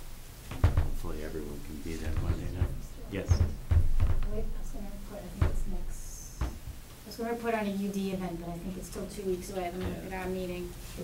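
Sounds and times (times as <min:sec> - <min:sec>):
dull knocks: 0:00.4 - 0:06.9, 0:09.7 - 0:10.2.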